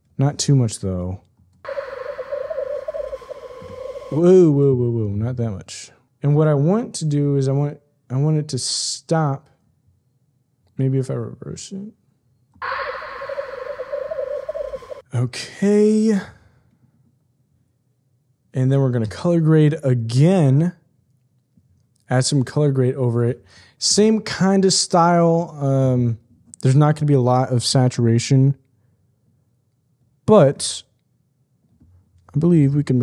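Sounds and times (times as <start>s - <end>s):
droning wavering tone: 1.7s - 4.3s, 12.6s - 15.0s
faint steady high tone: 1.7s - 4.8s, 12.6s - 15.0s.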